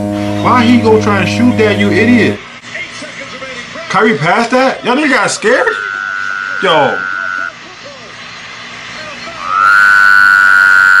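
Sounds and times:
high tone: 0.0 - 2.4, 5.5 - 7.6, 9.4 - 11.0
loud horn-like tone: 0.0 - 2.4, 5.6 - 7.5, 9.5 - 11.0.

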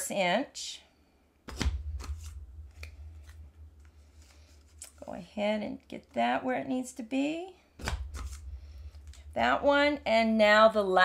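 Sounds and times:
paper rubbing: 1.5 - 5.3, 7.8 - 9.2.

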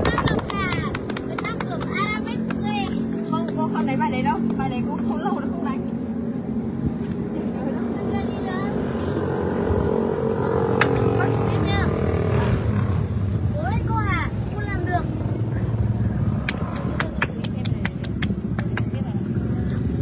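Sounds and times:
low outdoor rumble: 0.0 - 20.0
voices: 0.0 - 20.0.

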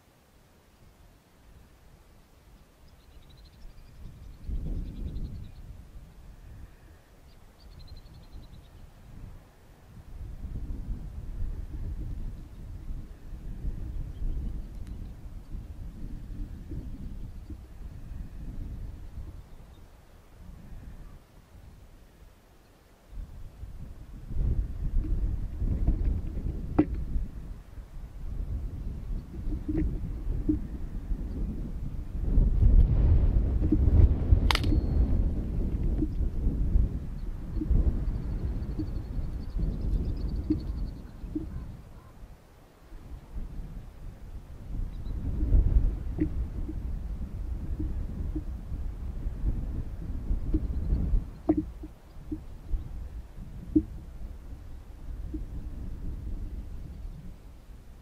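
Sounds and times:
wind buffeting microphone: 3.1 - 22.2, 23.1 - 42.3, 42.9 - 58.0
sharp click: 34.4 - 34.9.

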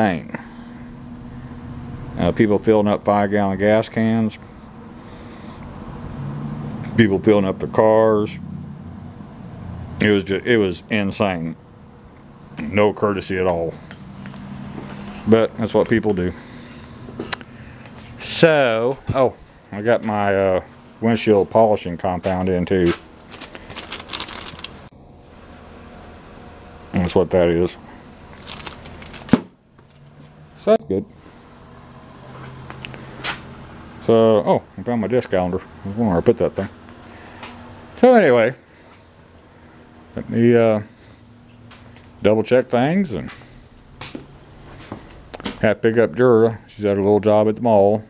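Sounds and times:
steady low hum: 0.0 - 48.0
plastic bag crinkling: 23.2 - 24.9, 28.3 - 29.4.

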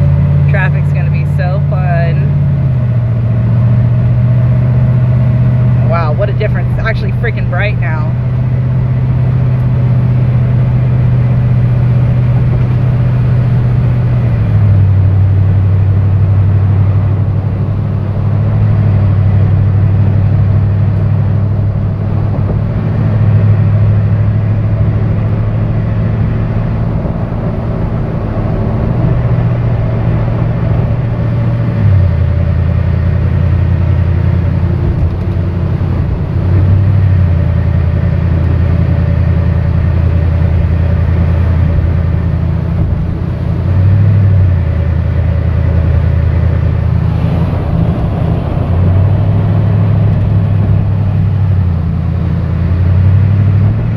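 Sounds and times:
road noise: 0.0 - 53.9
truck engine and tyre drone: 0.0 - 53.9.

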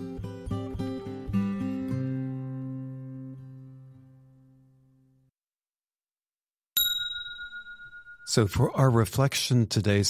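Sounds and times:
struck bell ringing: 6.8 - 8.7.

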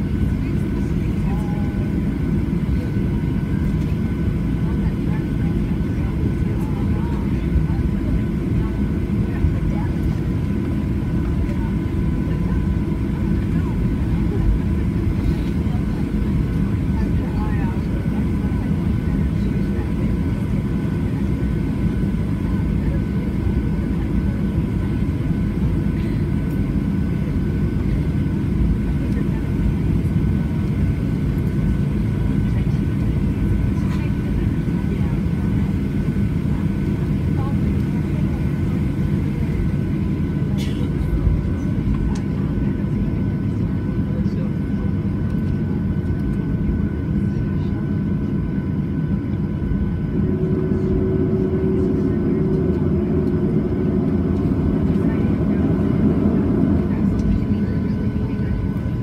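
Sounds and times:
jet engines rumbling: 0.0 - 59.0
constant whining tones: 0.1 - 59.0.

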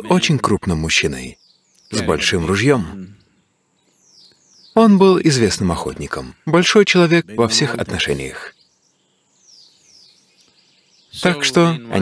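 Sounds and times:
bird chirping faintly: 0.0 - 12.0
faint background noise: 0.0 - 12.0.

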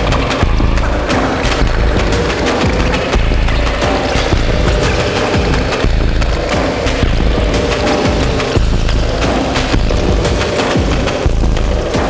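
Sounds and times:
heavy low drone: 0.0 - 12.0
noisy percussive hits: 0.0 - 12.0.

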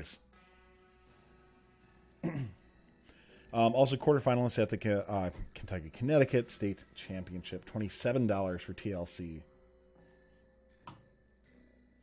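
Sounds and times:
faint background tone: 0.0 - 12.0.

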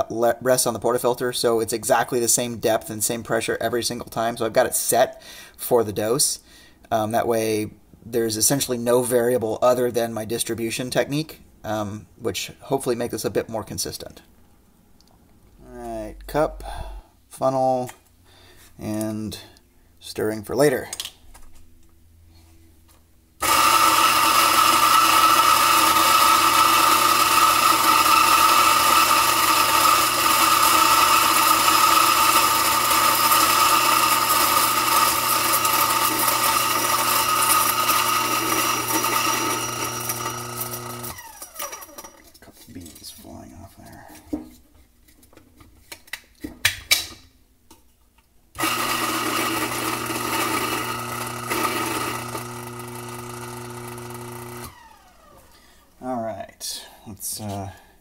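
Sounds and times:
coffee grinder running: 23.4 - 42.3, 48.6 - 55.6.

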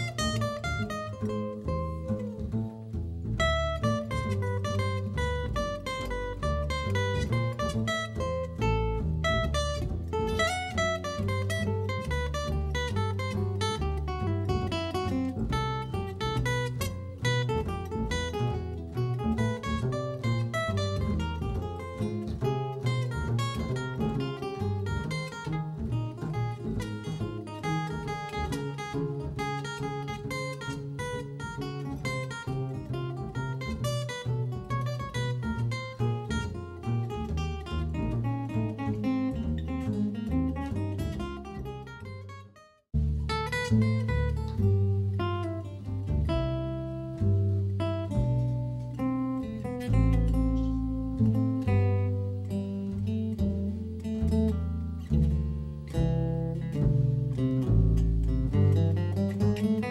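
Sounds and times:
acoustic guitar instrumental: 0.0 - 59.9.

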